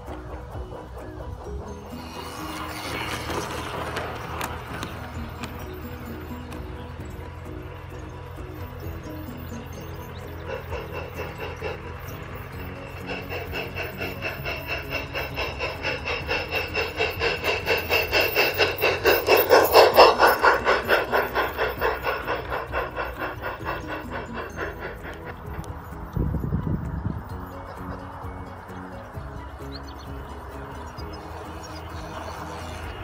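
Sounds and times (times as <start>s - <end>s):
background music: 0.0s - 33.0s
miniature train passing: 0.0s - 33.0s.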